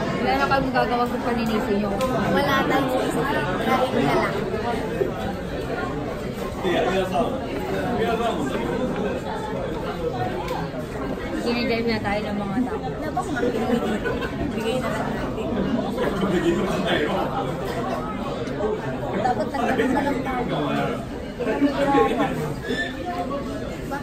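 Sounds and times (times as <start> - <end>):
restaurant chatter: 0.0 - 24.0.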